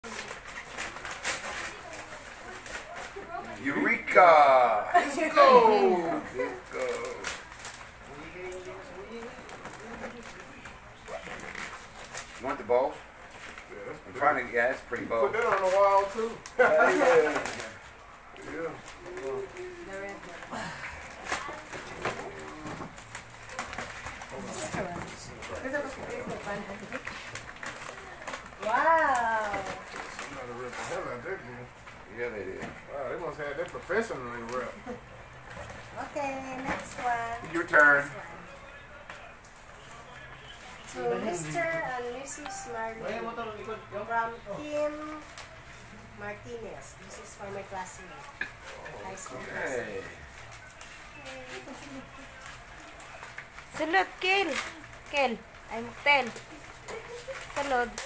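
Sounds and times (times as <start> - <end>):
gift wrapping paper rustling: 0.0 - 58.0.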